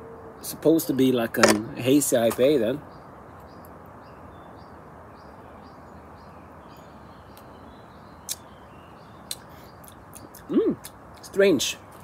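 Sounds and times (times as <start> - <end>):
faint birds chirping: 0.0 - 12.0
low background noise: 0.0 - 12.0.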